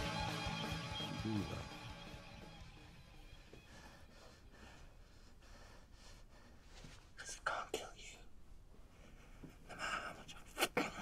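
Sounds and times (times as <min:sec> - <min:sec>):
man whispering: 0:07.1 - 0:08.4, 0:09.8 - 0:11.0.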